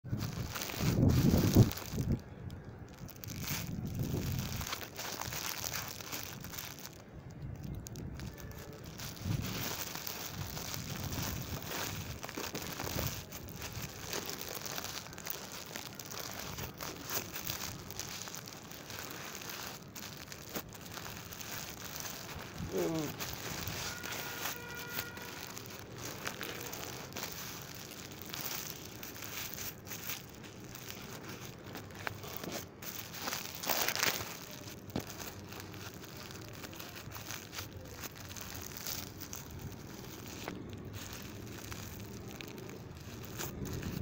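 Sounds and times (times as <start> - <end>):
screen cracking under tyre: 0.1 - 44.0.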